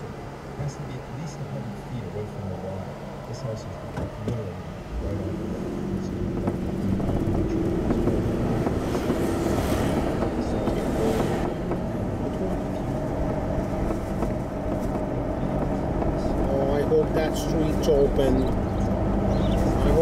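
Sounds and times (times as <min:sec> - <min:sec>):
car engine and tyre rumble: 0:00.0 - 0:20.0.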